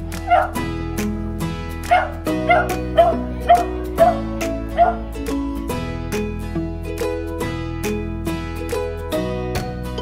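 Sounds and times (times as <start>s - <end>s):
background music: 0.0s - 10.0s
dog barking: 0.3s - 0.6s, 1.9s - 5.0s.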